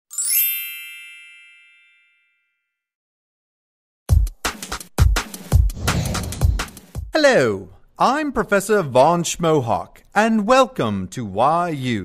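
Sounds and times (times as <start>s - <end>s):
bright ringing chime: 0.1s - 2.6s.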